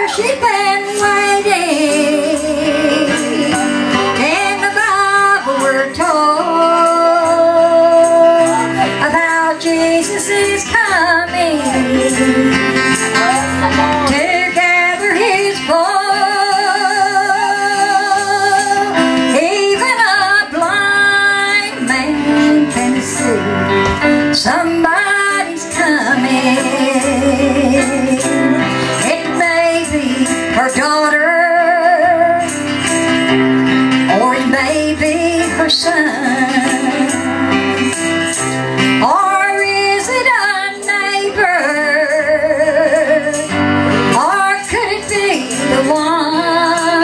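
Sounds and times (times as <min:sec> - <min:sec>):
woman singing gospel: 0:00.0 - 0:23.7, 0:24.3 - 0:32.5, 0:34.1 - 0:37.9, 0:39.0 - 0:47.0
instrumental accompaniment: 0:00.0 - 0:47.0.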